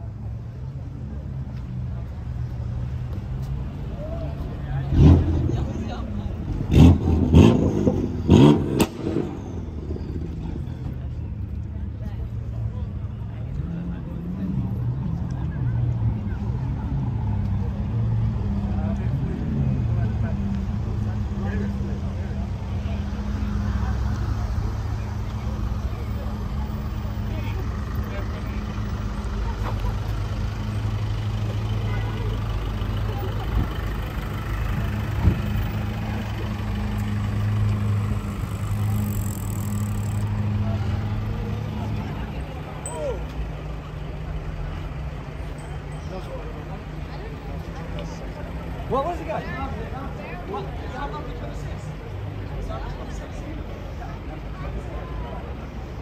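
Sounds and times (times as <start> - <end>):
surrounding voices: 0.0 - 56.0
car engine idling: 20.0 - 56.0.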